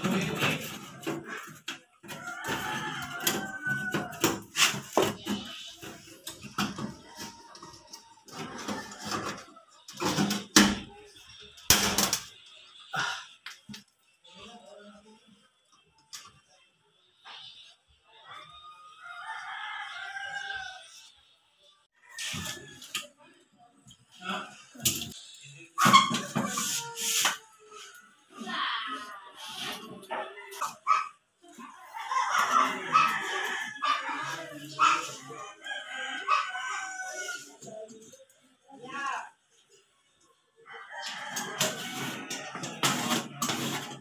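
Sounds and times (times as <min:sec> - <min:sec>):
rooster crowing: 0:02.1 - 0:04.7.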